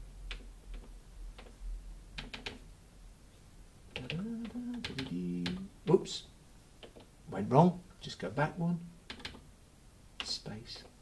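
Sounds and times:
man murmuring: 4.0s - 6.1s.

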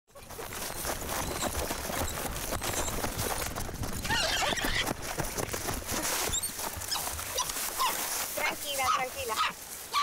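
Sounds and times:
dry grass rustling: 0.2s - 10.0s
monkey squealing: 4.0s - 4.9s, 6.3s - 8.0s.

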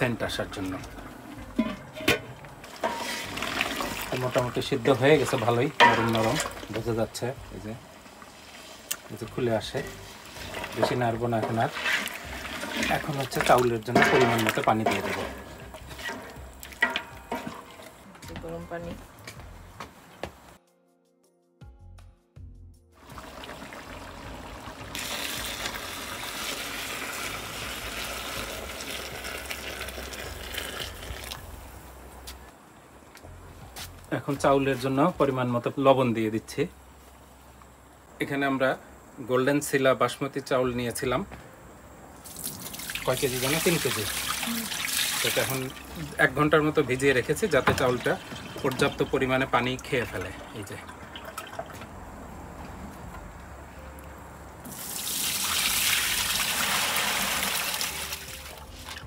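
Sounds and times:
water pouring into a pot: 2.6s - 17.9s, 23.0s - 31.5s, 42.2s - 51.8s, 54.7s - 59.0s.

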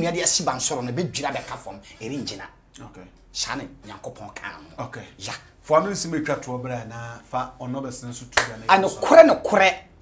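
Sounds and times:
man speaking: 0.0s - 10.0s
sharp hand clap: 8.4s - 8.6s.

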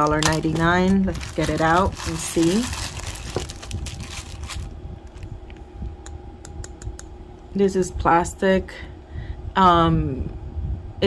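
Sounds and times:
plastic bag crinkling: 0.0s - 5.2s.

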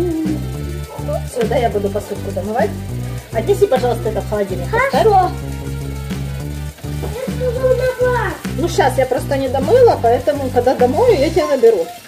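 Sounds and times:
background music with bass line: 0.0s - 11.5s.

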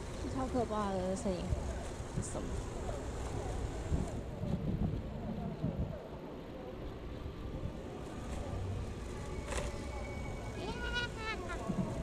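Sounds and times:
bicycle rolling on paved path: 0.0s - 12.0s
wind rumble on microphone: 1.0s - 9.0s.

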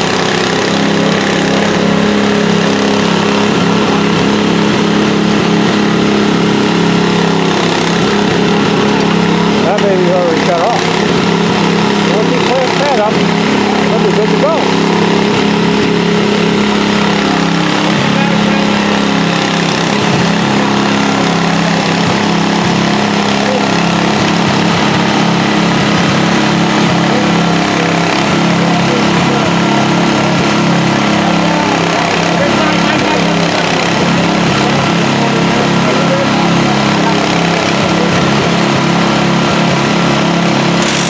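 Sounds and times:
engine idling: 0.0s - 41.0s
indistinct voices: 0.0s - 41.0s.

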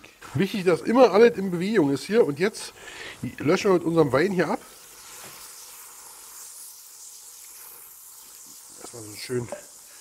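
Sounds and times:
roux sizzling in a hot pan: 0.0s - 10.0s
wine pouring into a pan: 0.2s - 10.0s.

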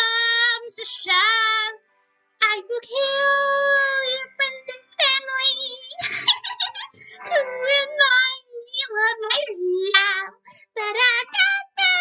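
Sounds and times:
woman singing in cartoonish voice: 0.0s - 1.8s, 2.4s - 12.0s.

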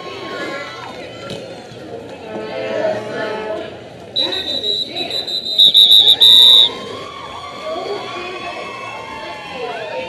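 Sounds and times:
referee's whistle short blasts: 4.2s - 6.7s.

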